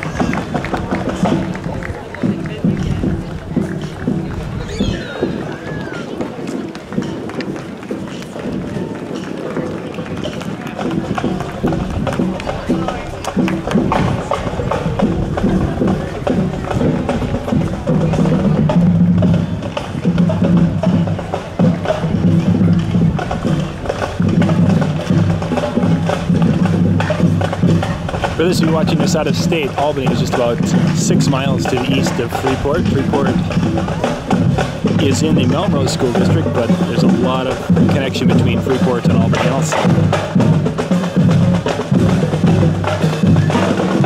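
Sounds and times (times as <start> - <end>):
drums beating: 0.0 - 44.0
marching band playing: 0.0 - 44.0.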